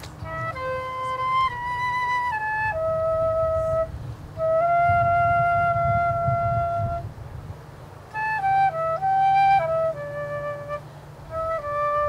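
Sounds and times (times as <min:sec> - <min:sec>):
flute holding long note: 0:00.0 - 0:07.1, 0:08.1 - 0:12.0.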